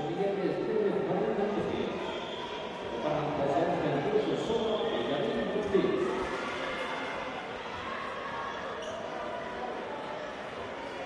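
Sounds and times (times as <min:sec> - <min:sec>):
murmur of distant voices: 0:00.0 - 0:11.0.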